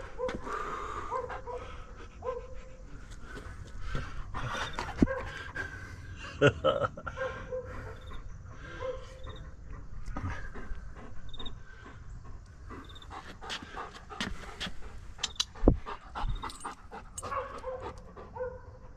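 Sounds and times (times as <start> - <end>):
dog panting: 0.0 - 6.2, 7.2 - 18.9.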